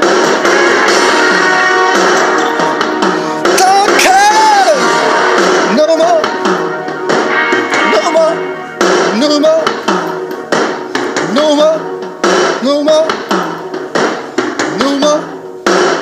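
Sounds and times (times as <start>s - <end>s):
karaoke backing track: 0.0s - 16.0s
loud drum hits: 8.8s - 14.9s.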